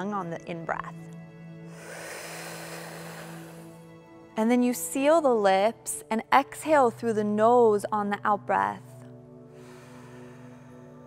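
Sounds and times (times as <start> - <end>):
soft background music: 0.0 - 11.0
hissing in-breath through mouth: 1.7 - 3.9.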